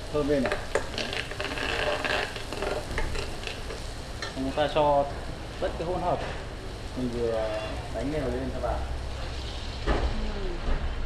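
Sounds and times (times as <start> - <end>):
food sizzling in hot oil: 0.0 - 10.7.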